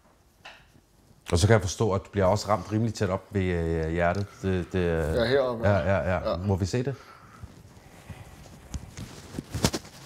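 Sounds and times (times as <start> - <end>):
cloth rustling: 7.3 - 10.0.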